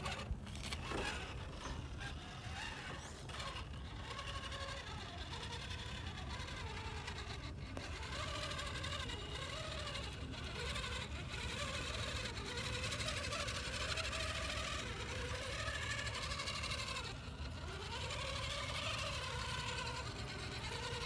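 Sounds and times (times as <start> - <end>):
electric motor whining under load: 0.0 - 21.0.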